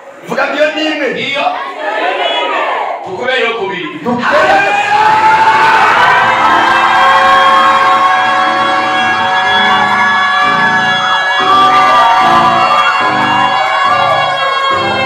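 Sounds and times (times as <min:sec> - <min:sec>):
congregation cheering and shouting: 0:01.1 - 0:15.0
electronic keyboard sustained chord: 0:06.2 - 0:15.0.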